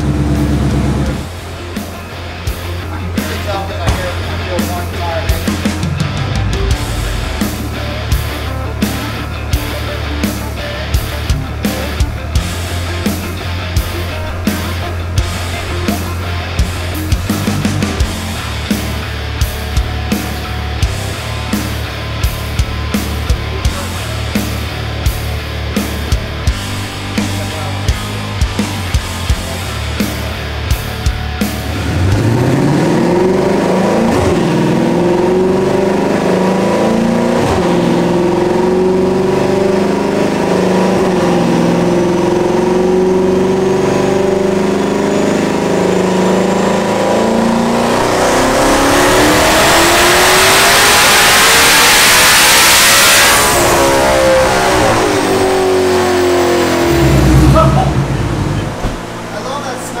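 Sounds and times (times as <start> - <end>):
car engine revving on dyno: 0.0 - 59.5
high turbo whine: 0.0 - 60.0
loud low thump: 3.8 - 4.4, 56.6 - 59.3.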